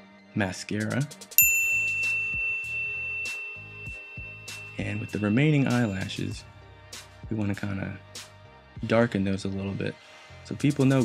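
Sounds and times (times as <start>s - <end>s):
background music with steady beat: 0.6s - 11.0s
high ringing ding: 1.4s - 6.4s.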